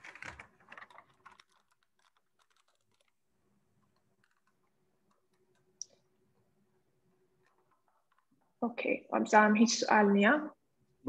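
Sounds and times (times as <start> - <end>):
faint keyboard typing: 0.0 - 6.4, 7.1 - 8.6.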